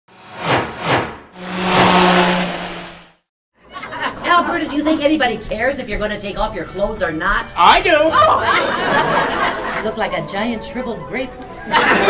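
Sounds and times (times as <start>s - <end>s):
whooshes: 0.1s - 3.2s.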